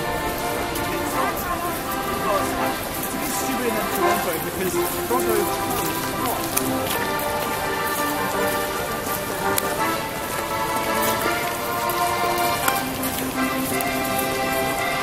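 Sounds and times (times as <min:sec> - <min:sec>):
music with long held notes: 0:00.0 - 0:15.0.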